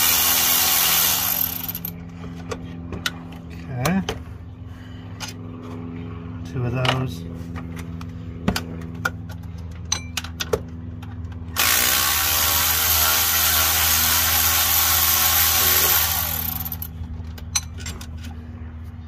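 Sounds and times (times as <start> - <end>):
cordless power tool running: 0.0 - 1.9, 11.6 - 16.9.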